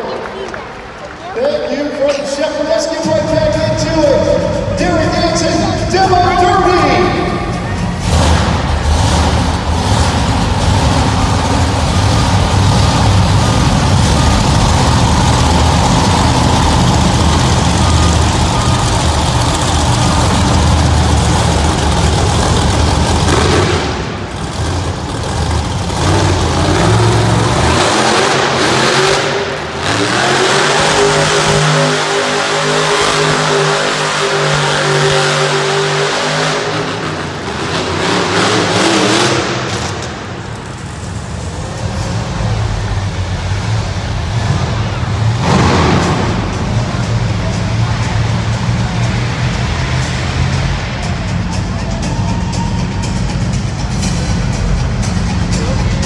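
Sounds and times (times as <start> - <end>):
truck engine revving hard: 7.1 - 56.0.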